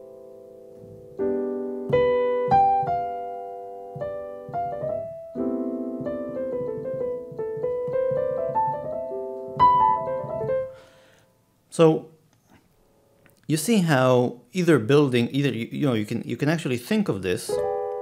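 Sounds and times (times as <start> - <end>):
piano playing jazz chords: 0.0 - 11.1, 17.5 - 18.0.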